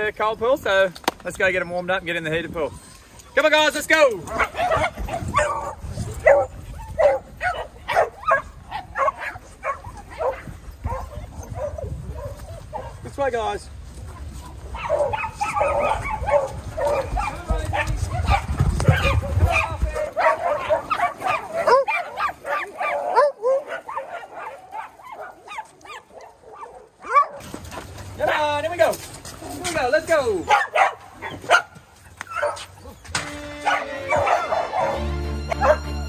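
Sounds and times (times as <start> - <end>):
dogs barking and whining: 2.5 - 13.1, 14.0 - 28.6, 29.3 - 36.0.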